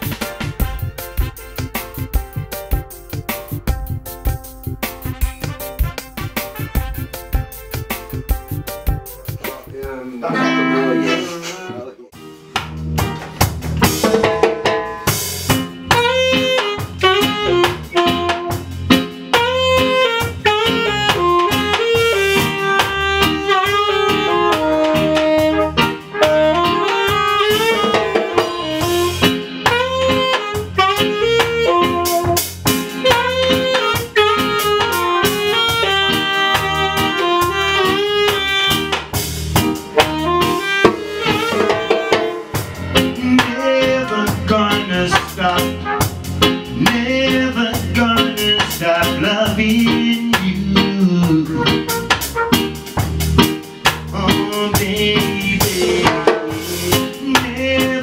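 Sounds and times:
saxophone melody: 0:00.0 - 0:09.5, 0:10.3 - 0:11.7, 0:15.5 - 0:47.2, 0:50.7 - 0:53.5, 0:55.2 - 0:57.7
steady drum beat: 0:00.0 - 0:10.2, 0:12.1 - 0:58.0
acoustic bass guitar: 0:00.0 - 0:58.0.

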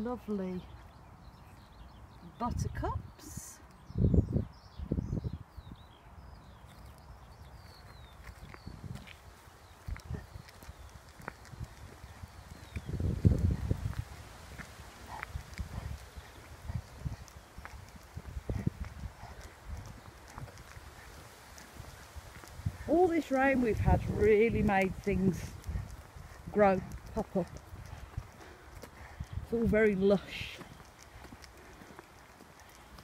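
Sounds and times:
faint birdsong chirps: 0:00.0 - 0:33.0
footsteps walking: 0:07.8 - 0:33.0
low rumbles on microphone: 0:09.8 - 0:22.9.

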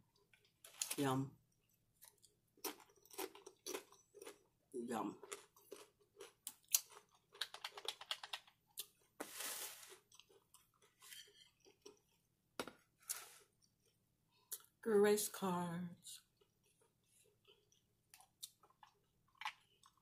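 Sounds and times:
chewing crunchy chips: 0:02.0 - 0:09.2, 0:09.9 - 0:12.3, 0:16.2 - 0:20.0.

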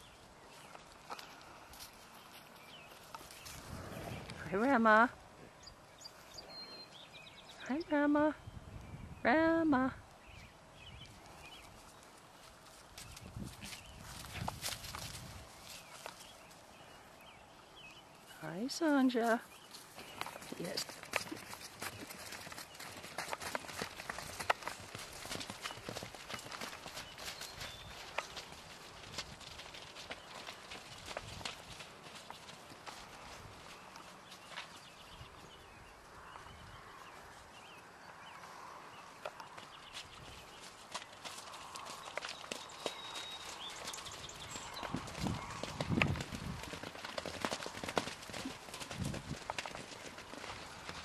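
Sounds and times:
horse hooves galloping on turf: 0:11.1 - 0:16.9, 0:18.8 - 0:35.6, 0:39.2 - 0:51.0.

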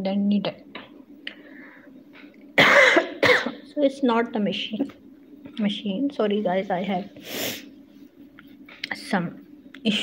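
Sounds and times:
woman coughing: 0:02.6 - 0:03.6.

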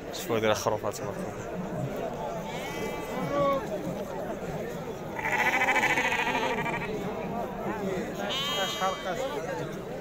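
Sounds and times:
murmur of crowd: 0:00.0 - 0:10.0
sheep bleating: 0:05.2 - 0:07.0, 0:08.2 - 0:09.3.

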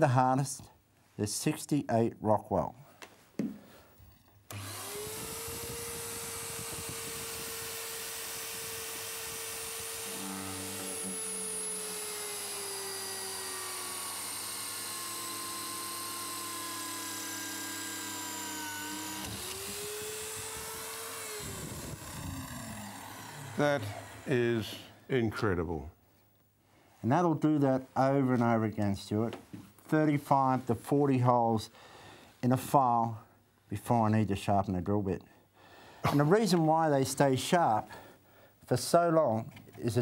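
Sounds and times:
electric drill boring through steel: 0:04.5 - 0:24.8.

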